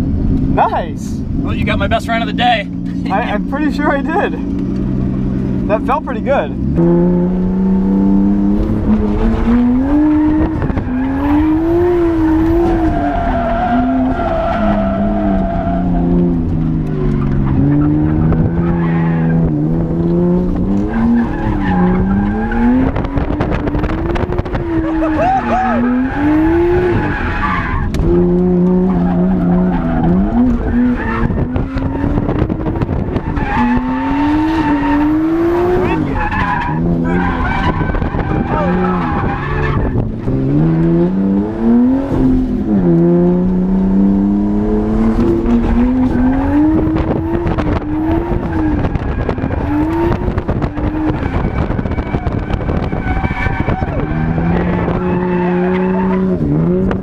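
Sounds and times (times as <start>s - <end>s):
car engine revving: 0.0s - 57.0s
tyres skidding: 0.0s - 57.0s.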